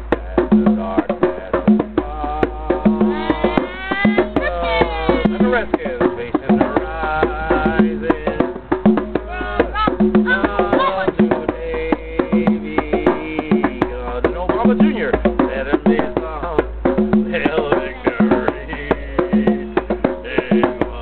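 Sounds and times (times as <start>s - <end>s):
hand drums playing: 0.0s - 21.0s
voices over drumming: 0.0s - 21.0s.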